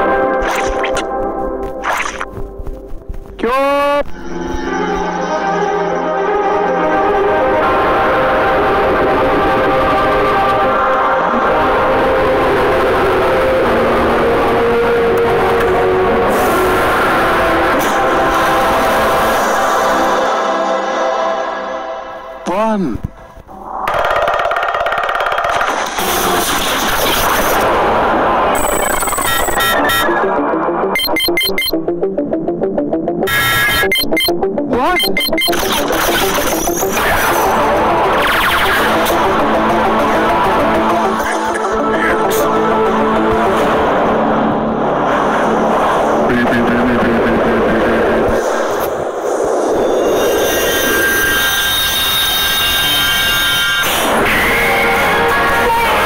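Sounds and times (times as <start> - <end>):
electronic music tones: 0.0 - 3.4, 28.5 - 41.8
dense wash of noise: 42.8 - 50.7.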